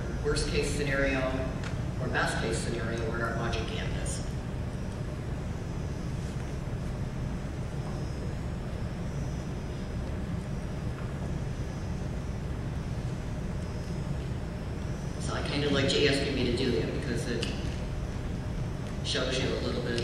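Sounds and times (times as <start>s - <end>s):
faint high whines: 0.0s - 20.0s
hall room hum and hiss: 0.0s - 20.0s.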